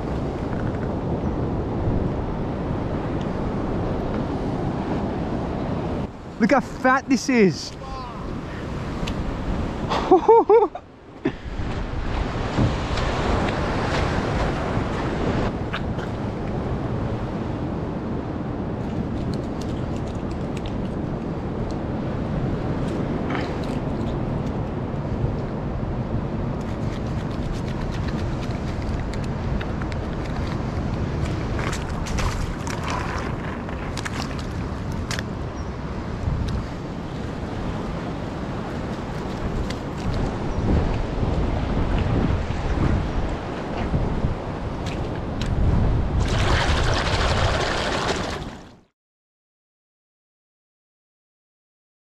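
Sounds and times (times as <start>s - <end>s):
ocean surf washing on rocks: 0.0s - 48.9s
wind on microphone: 0.0s - 48.9s.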